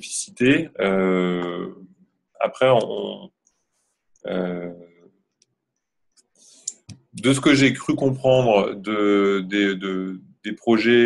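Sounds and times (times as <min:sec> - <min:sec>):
man speaking: 0:00.0 - 0:03.3, 0:04.2 - 0:04.9, 0:06.7 - 0:11.0
mouth clicks: 0:06.6 - 0:07.2.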